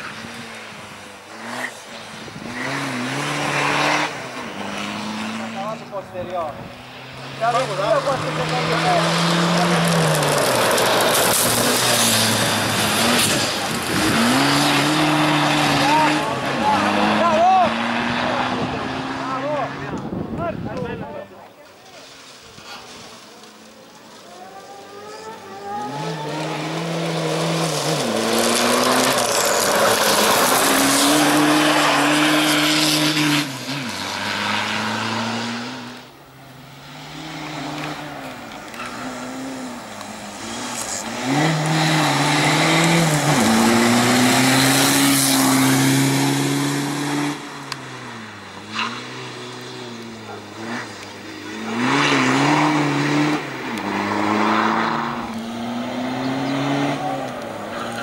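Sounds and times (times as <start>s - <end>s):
race car engine revving: 0.0s - 20.3s, 24.1s - 58.0s.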